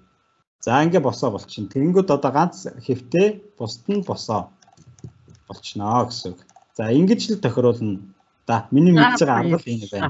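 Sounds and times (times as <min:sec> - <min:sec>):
man speaking: 0:00.6 - 0:04.5, 0:05.5 - 0:10.0
keyboard or mouse clicks: 0:04.6 - 0:06.8.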